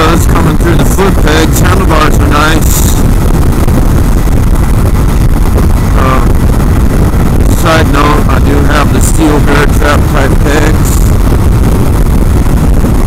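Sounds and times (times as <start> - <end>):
motorcycle engine running: 0.0 - 13.0
wind buffeting microphone: 0.0 - 13.0.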